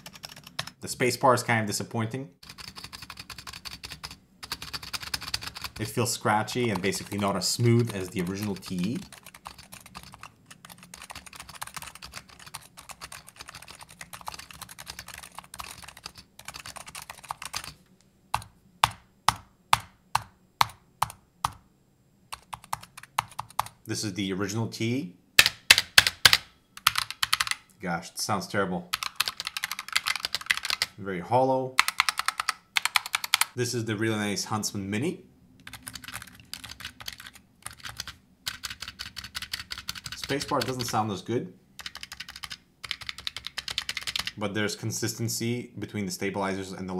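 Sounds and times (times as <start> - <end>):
mechanical keyboard typing: 0.0 - 0.8, 2.4 - 17.8, 18.4 - 21.6, 22.3 - 23.8, 25.4 - 27.6, 28.9 - 31.0, 31.8 - 33.6, 35.6 - 41.1, 41.8 - 44.4.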